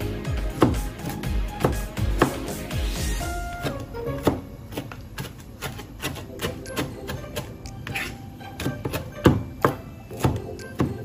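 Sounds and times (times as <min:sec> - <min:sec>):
knife chopping on cutting board: 0:00.3 - 0:02.6, 0:03.4 - 0:11.0.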